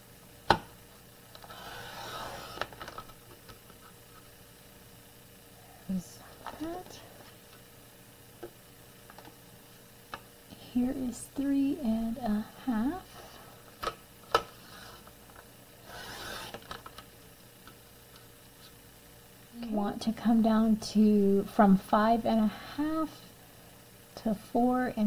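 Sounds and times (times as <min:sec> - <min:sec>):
paper scraping: 0:01.4 - 0:03.2, 0:15.8 - 0:16.8
woman murmuring: 0:10.5 - 0:13.1.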